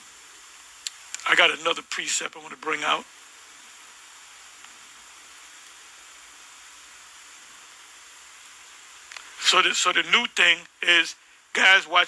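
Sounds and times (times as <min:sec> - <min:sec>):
faint background hiss: 0:00.0 - 0:12.0
faint tick: 0:00.8 - 0:01.2, 0:04.6 - 0:04.8, 0:05.6 - 0:05.8, 0:09.1 - 0:09.4.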